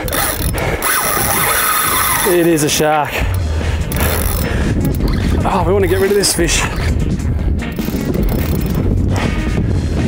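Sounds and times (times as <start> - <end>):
fishing reel grinding and clicking: 0.0 - 9.3
wind rumble on microphone: 3.2 - 10.0.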